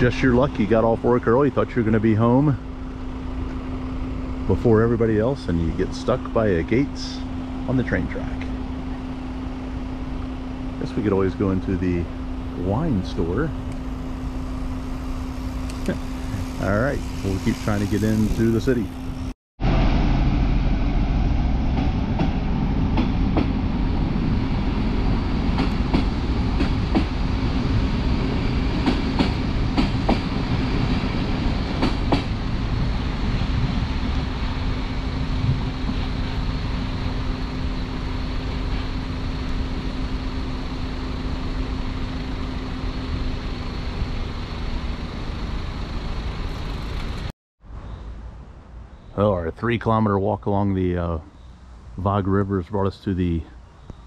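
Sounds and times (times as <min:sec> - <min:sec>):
steady hum: 0:00.0 - 0:47.3
train rumbling past: 0:00.0 - 0:48.9
wheels clacking over rail joints: 0:24.6 - 0:40.2.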